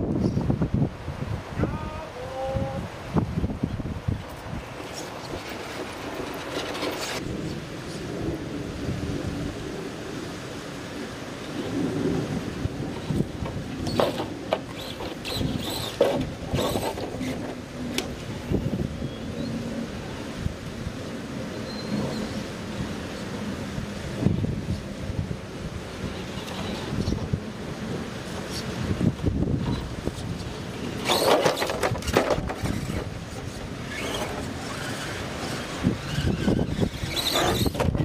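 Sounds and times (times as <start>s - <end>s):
wind buffeting microphone: 0.0s - 38.0s
electric motor and gears whine: 13.0s - 19.5s, 30.9s - 38.0s.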